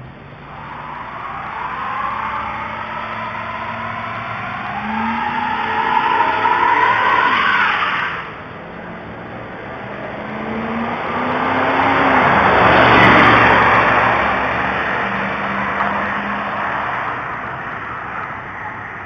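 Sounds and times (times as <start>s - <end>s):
approaching vehicle engine: 0.0s - 19.0s
vehicle engine accelerating hard: 0.0s - 19.0s.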